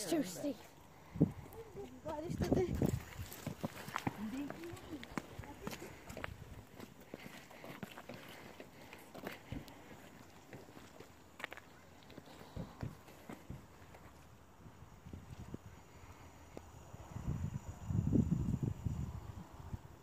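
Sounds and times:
light footsteps: 0:00.2 - 0:14.4.

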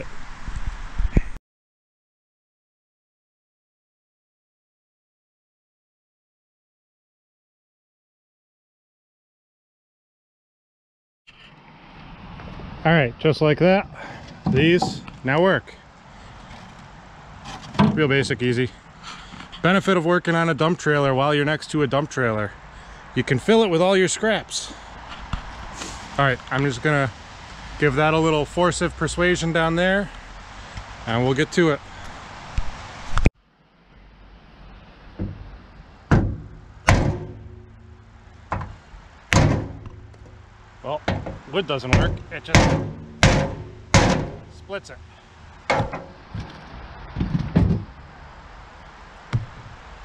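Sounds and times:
steady background hiss: 0:12.4 - 0:50.0
man talking: 0:12.8 - 0:15.9, 0:17.8 - 0:18.8, 0:19.6 - 0:22.6, 0:23.2 - 0:24.8, 0:26.2 - 0:27.2, 0:27.8 - 0:30.2, 0:31.0 - 0:31.8, 0:40.8 - 0:42.8, 0:44.4 - 0:45.2
hammer knocking on wood: 0:41.1 - 0:44.5, 0:49.3 - 0:49.7.

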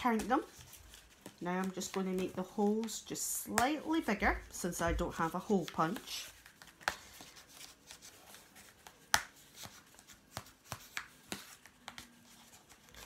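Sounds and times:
scratchy paper sounds: 0:00.0 - 0:04.3, 0:05.0 - 0:13.0.

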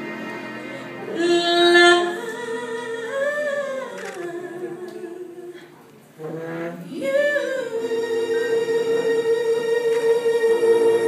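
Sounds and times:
woman singing long notes: 0:01.1 - 0:05.6, 0:06.2 - 0:11.0.

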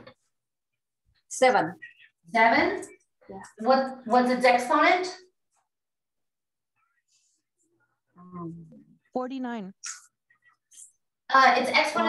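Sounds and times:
woman speaking: 0:08.2 - 0:10.0.

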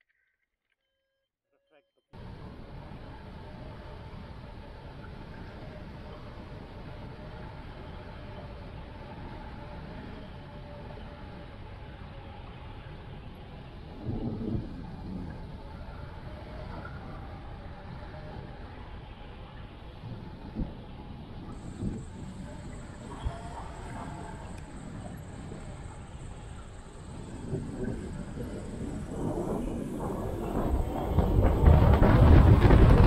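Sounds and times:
wind rushing past microphone: 0:02.2 - 0:33.0.

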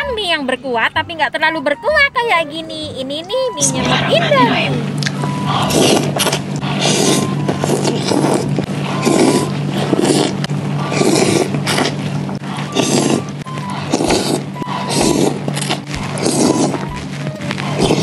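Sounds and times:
quiet background music: 0:00.0 - 0:09.6, 0:12.4 - 0:18.0
person slurping noodles: 0:05.5 - 0:16.9, 0:17.7 - 0:18.0.

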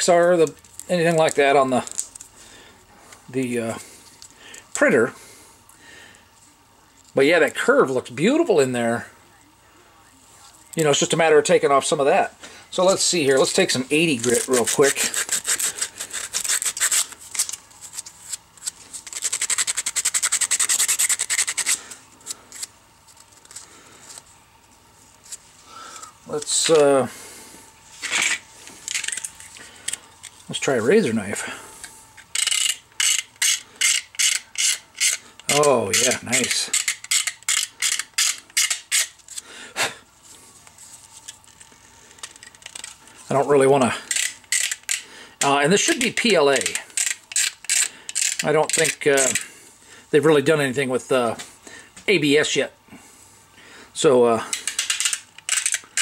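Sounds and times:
sandpaper scratching plastic: 0:13.4 - 0:21.9, 0:32.4 - 0:39.4.

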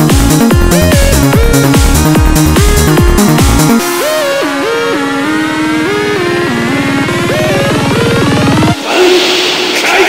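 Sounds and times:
electronic dance music: 0:00.0 - 0:10.0
rising synth tone: 0:00.4 - 0:09.9.

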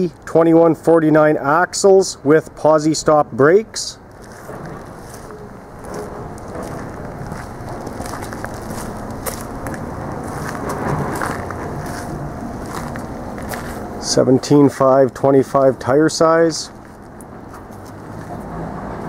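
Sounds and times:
footsteps crunching on gravel: 0:04.1 - 0:14.1, 0:16.6 - 0:18.4.

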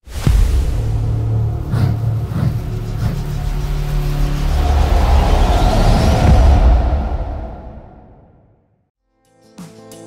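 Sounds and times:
deep held drone: 0:01.0 - 0:07.9
rising sweep: 0:01.6 - 0:08.5.

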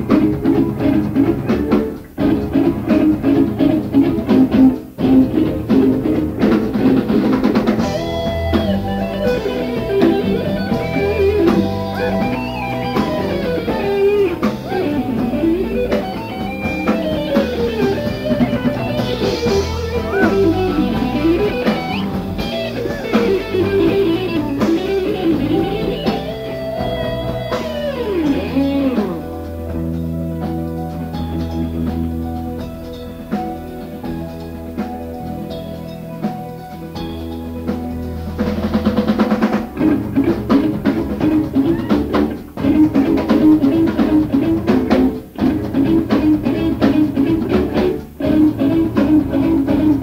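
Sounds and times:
rock band playing live: 0:00.0 - 0:50.0
sliding lead melody: 0:00.0 - 0:50.0.

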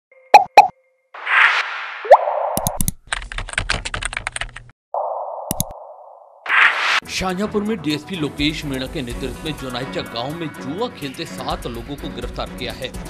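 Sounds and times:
whoosh: 0:06.5 - 0:07.0.

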